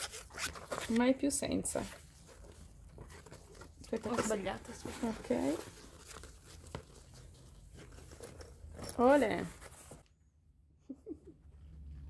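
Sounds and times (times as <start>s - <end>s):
cloth bag rustling: 0.0s - 10.0s.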